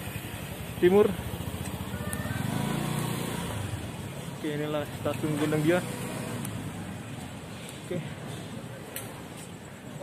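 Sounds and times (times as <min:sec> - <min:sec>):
motorcycle engine running: 0:00.0 - 0:04.2.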